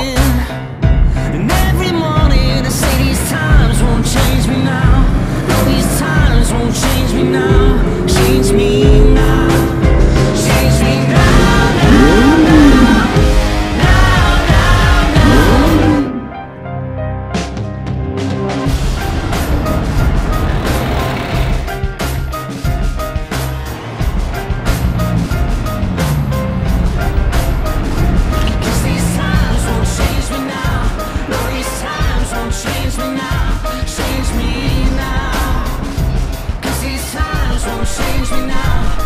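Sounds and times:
music with a steady beat: 0.0 - 16.2, 17.4 - 39.0
car engine accelerating: 1.3 - 16.3, 18.2 - 39.0.

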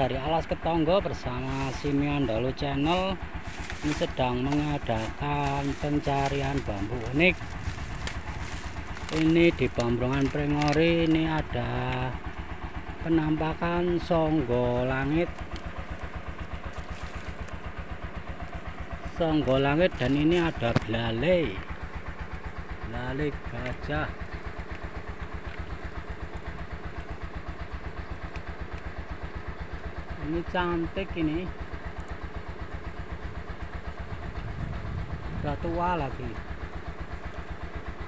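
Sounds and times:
engine idling with low chugging: 0.0 - 38.0.

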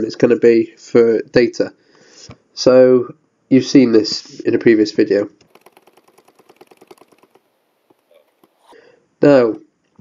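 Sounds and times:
mouse scroll wheel ticking: 5.4 - 8.7.

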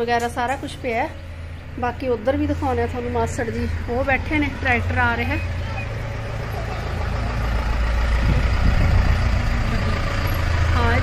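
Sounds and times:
pickup truck engine rumble: 0.0 - 11.0.

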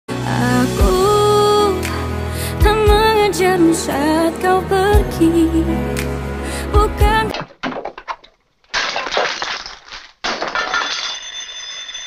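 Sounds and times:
gramophone record smashing: 7.3 - 11.5
high ringing: 10.8 - 12.0.

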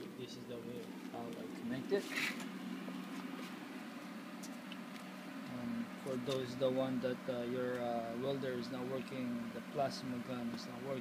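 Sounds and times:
faint low hum: 0.0 - 11.0
brief rustle: 2.0 - 3.6.

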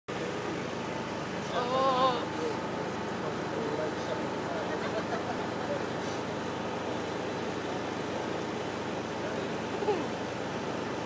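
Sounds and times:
road traffic: 0.1 - 11.0
person calling out: 1.5 - 2.5.

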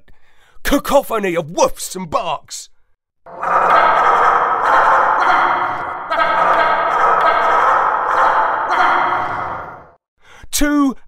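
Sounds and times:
pack of dogs barking: 3.3 - 9.9.

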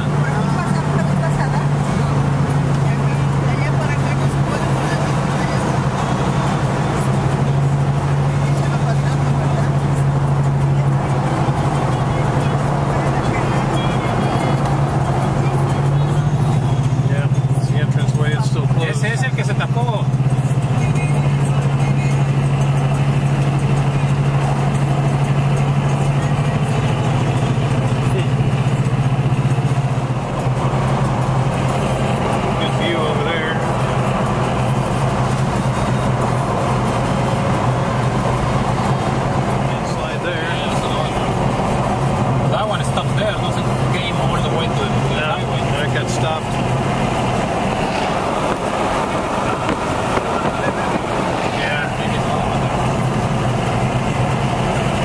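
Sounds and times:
road and engine drone inside car: 0.0 - 55.0.

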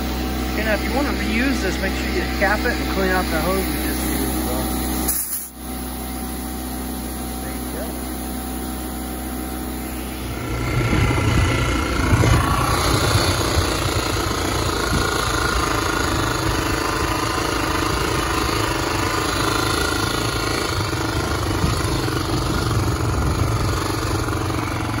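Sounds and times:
dirt bike engine: 0.0 - 25.0
wind on microphone: 10.3 - 15.2.

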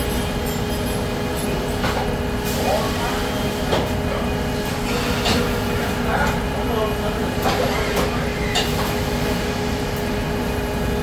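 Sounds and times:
factory machinery rumble and hum: 0.0 - 11.0.

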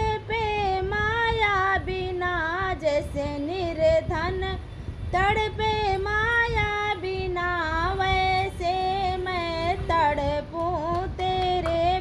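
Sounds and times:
woman singing devotional song: 0.0 - 12.0.

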